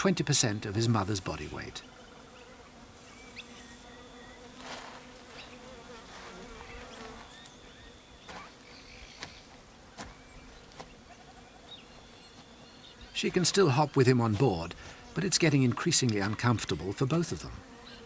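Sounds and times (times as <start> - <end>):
flying insects buzzing: 0.0 - 18.0.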